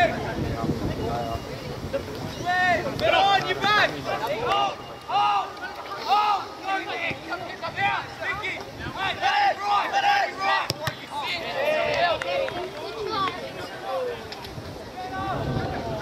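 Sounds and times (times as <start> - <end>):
people shouting and calling out: 0.0 - 16.0.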